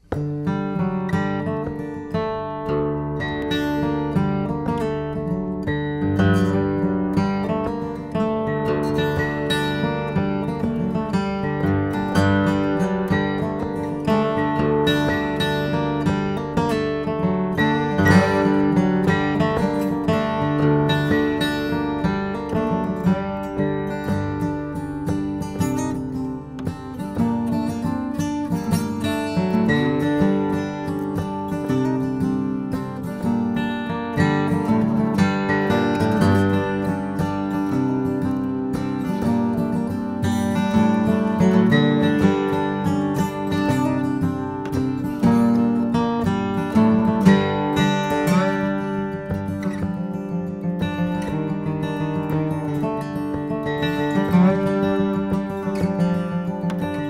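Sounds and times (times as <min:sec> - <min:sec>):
acoustic guitar strummed and picked: 0:00.0 - 0:57.0
lap slide guitar melody: 0:00.0 - 0:57.0.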